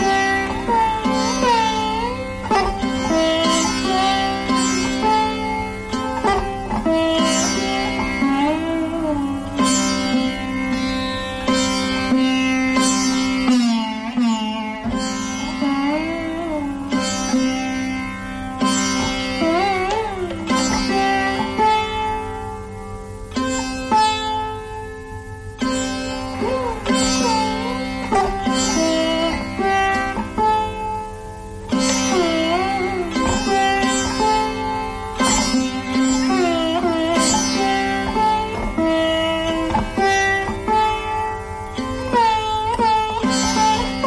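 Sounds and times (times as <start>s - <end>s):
sitar plucked notes: 0.0s - 44.0s
sitar string drone: 0.0s - 44.0s.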